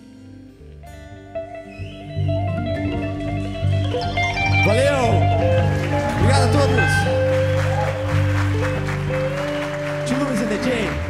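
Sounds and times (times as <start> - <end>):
live band sustained notes: 0.0 - 11.0
audience applause: 4.2 - 11.0.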